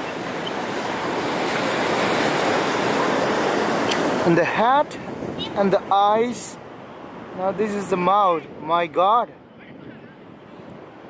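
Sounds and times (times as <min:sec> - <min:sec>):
sea surf washing onto beach: 0:00.0 - 0:09.0.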